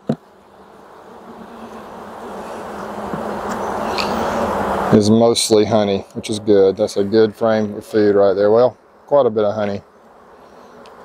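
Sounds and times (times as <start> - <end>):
honeybees humming: 0.0 - 11.0.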